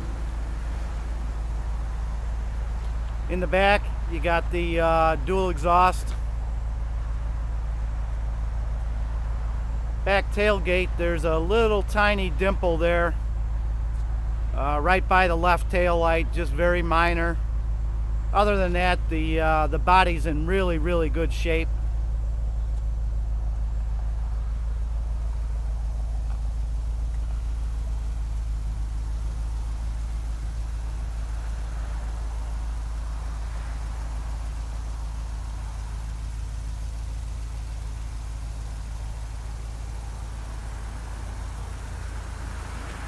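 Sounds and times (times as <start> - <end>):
car engine idling: 0.0 - 43.0.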